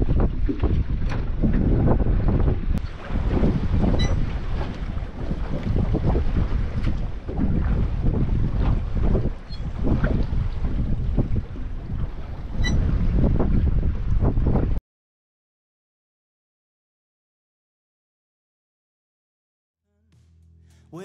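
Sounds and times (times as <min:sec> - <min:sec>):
choppy water against boat: 0:00.0 - 0:14.8
gusting wind buffeting microphone: 0:00.0 - 0:14.8.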